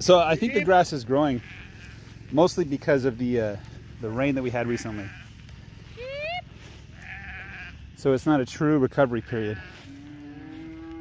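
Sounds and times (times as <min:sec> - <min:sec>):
sheep bleating: 0:00.1 - 0:03.1, 0:03.8 - 0:08.0, 0:09.0 - 0:11.0.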